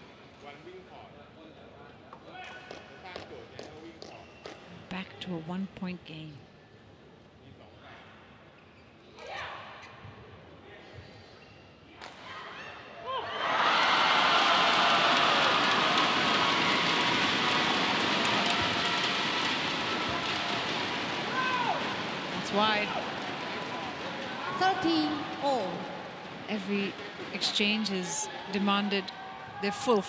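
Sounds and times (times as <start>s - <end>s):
arena crowd noise: 12.0s - 30.0s.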